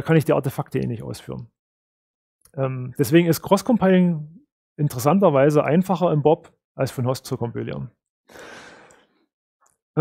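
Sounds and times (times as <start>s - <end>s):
man breathing: 8.3s - 9.3s.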